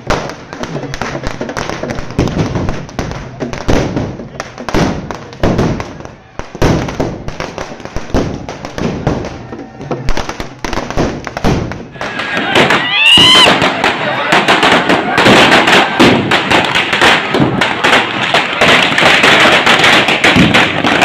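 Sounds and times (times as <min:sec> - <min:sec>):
crowd voices: 0:00.0 - 0:21.0
firecrackers bursting: 0:00.0 - 0:21.0
high call rising and falling: 0:12.0 - 0:16.0.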